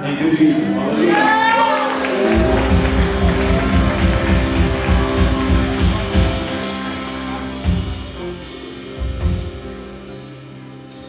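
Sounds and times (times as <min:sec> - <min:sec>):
electric guitar and drums playing: 0:00.9 - 0:11.0
pulsing low beat: 0:02.4 - 0:11.0.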